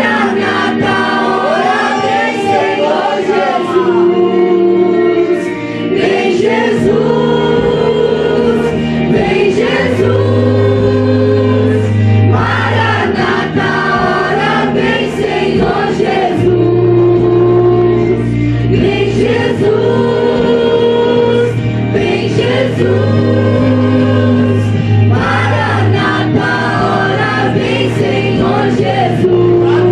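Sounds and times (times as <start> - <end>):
group singing gospel song: 0.0 - 29.9.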